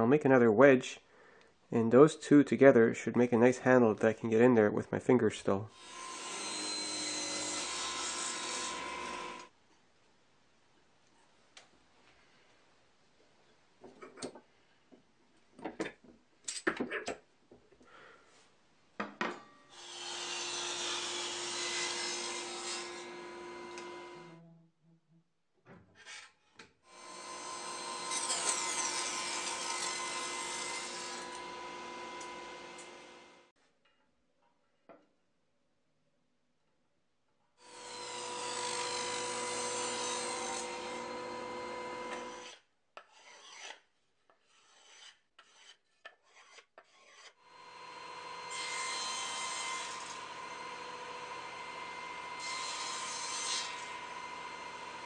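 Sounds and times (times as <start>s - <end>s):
table saw cutting wood: 5.7s - 9.5s, 19.7s - 24.4s, 26.9s - 33.5s, 37.6s - 42.6s, 47.0s - 55.0s.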